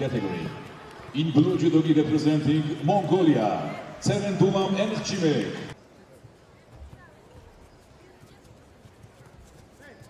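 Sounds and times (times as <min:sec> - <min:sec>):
murmur of arena voices: 0:00.0 - 0:10.0.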